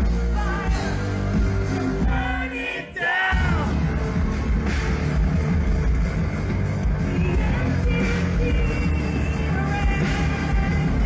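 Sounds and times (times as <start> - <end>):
live rock band playing: 0.0 - 2.6, 3.3 - 11.0.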